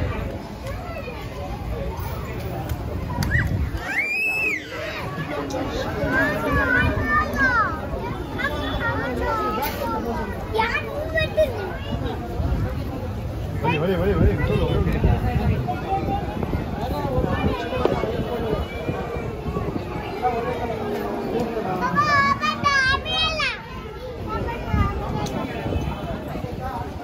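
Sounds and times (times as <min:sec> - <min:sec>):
children's voices: 0:00.0 - 0:25.8
crowd talking: 0:00.0 - 0:27.0.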